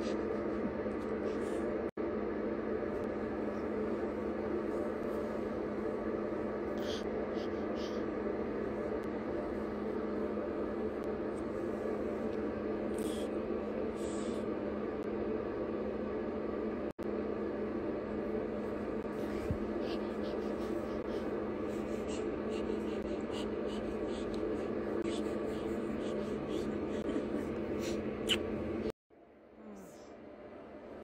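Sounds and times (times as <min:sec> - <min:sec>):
steady droning hum: 0:00.0 - 0:31.0.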